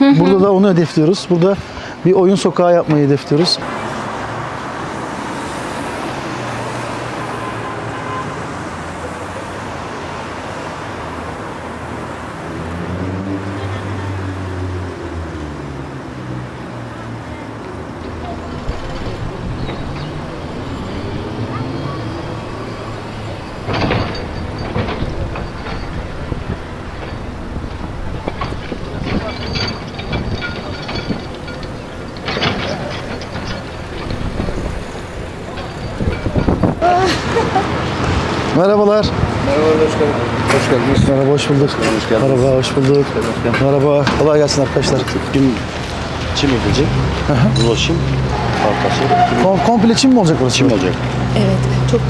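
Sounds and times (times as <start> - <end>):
hand tools scraping and knocking: 23.2 - 36.8.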